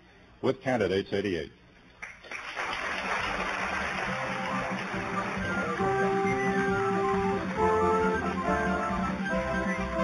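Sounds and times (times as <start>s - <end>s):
television theme music: 2.3s - 10.0s.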